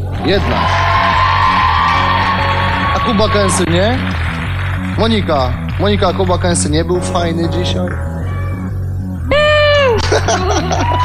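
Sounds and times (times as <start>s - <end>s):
studio audience cheering: 0.0s - 6.2s, 9.6s - 11.0s
television background music: 0.0s - 11.0s.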